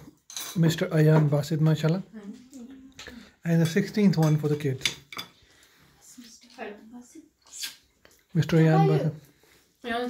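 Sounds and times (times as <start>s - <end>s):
spoons clinking on plates: 0.0s - 1.4s, 3.0s - 5.8s.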